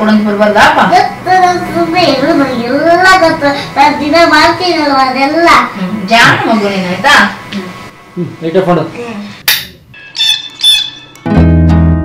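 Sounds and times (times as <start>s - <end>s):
short high bird calls: 10.1s - 11.1s.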